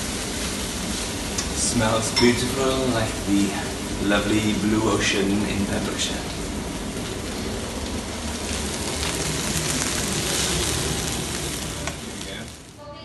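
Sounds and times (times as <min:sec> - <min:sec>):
food sizzling in a frying pan: 0:00.0 - 0:13.0.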